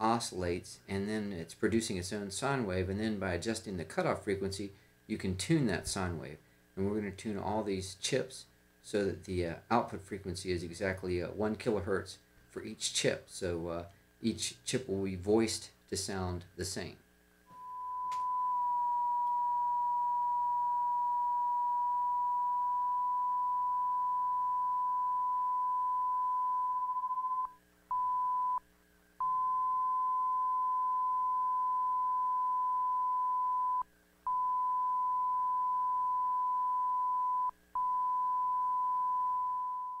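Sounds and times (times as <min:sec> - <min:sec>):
steady sine tone: 0:17.4 - 0:40.0.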